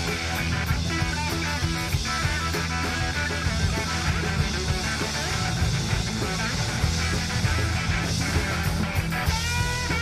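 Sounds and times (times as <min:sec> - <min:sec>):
drum kit beat: 0:00.0 - 0:10.0
electric guitar: 0:00.0 - 0:10.0
low bass notes: 0:00.0 - 0:10.0.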